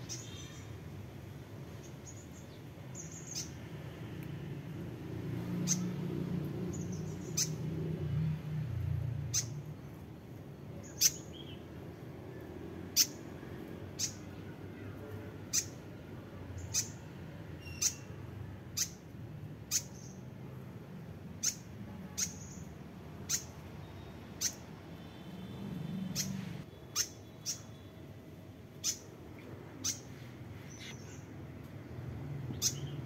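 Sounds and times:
nestlings chirping: 0.0 - 0.8, 1.8 - 4.4, 5.4 - 7.8, 9.0 - 28.0, 28.8 - 31.4, 32.5 - 33.0.

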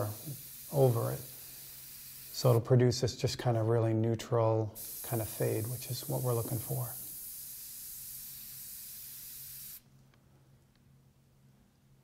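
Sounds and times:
airbrush air hiss: 0.0 - 2.7, 4.8 - 9.9.

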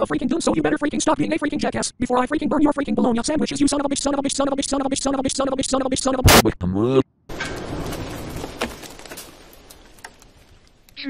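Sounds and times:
explosion rumble: 7.3 - 10.9
sharp crackles: 7.3 - 11.0.

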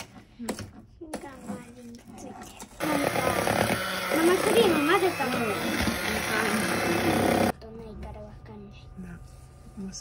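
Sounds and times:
electric hand mixer running: 2.8 - 7.5.

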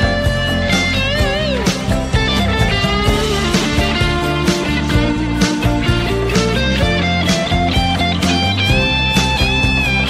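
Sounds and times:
guitar lead note with vibrato: 0.0 - 10.0
rock song with drums and guitar: 0.0 - 10.0.

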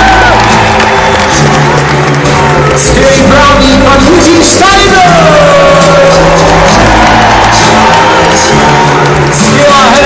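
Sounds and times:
crowd cheering: 0.0 - 10.0
live band music over pa: 0.0 - 10.0.

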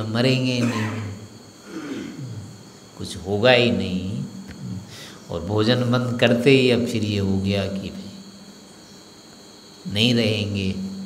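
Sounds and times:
man speaking: 9.9 - 10.9.

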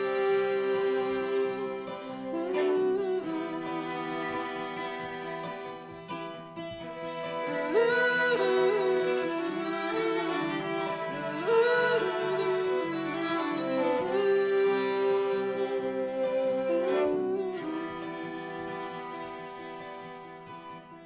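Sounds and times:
violins bowing sustained notes: 0.0 - 21.0.

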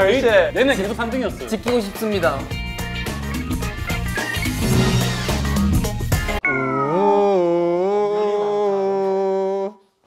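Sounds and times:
music: 0.0 - 6.7.

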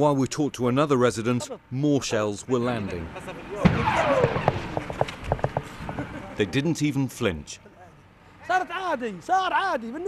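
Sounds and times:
artillery shell blast: 3.6 - 5.5
short sharp knocks: 3.7 - 6.0.

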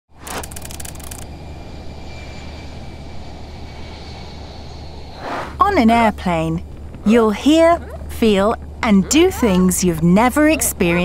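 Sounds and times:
fast ticks: 0.2 - 1.3
jet airliner drone: 0.2 - 11.0.

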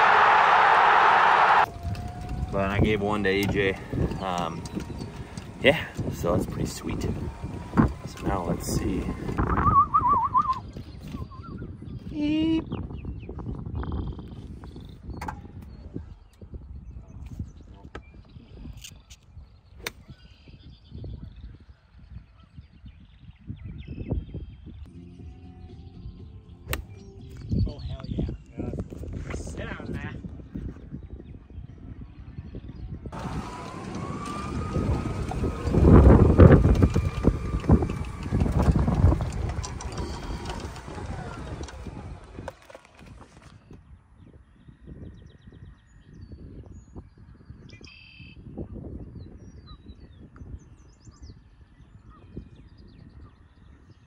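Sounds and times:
golf cart motor whine: 0.0 - 10.6, 33.1 - 43.8
low rumbling: 0.0 - 11.6, 33.1 - 43.7.

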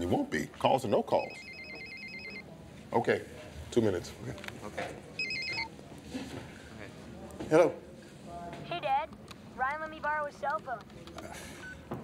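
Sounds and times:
cell phone ringing: 1.2 - 2.4, 5.2 - 5.7.

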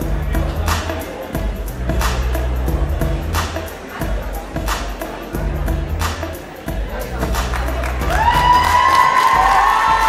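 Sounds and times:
music: 0.0 - 10.0
crowd cheering: 7.7 - 10.0
shrill whoop: 8.1 - 10.0.

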